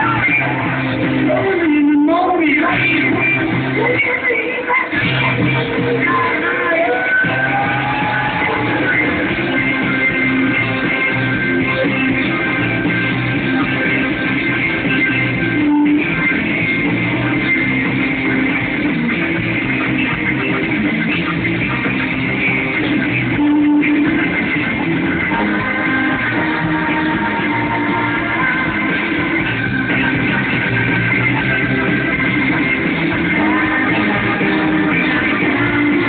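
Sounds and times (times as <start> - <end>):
drums: 0.0 - 36.0
electric guitar: 0.0 - 36.0
live rock band playing: 0.0 - 36.0.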